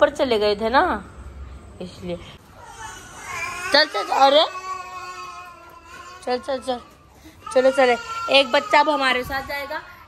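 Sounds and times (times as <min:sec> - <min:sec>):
shrill high-pitched cry: 0:02.6 - 0:09.7.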